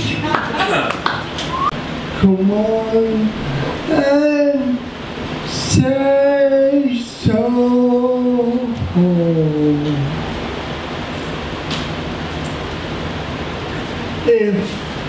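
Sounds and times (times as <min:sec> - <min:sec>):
steady hiss: 0:00.2 - 0:15.0.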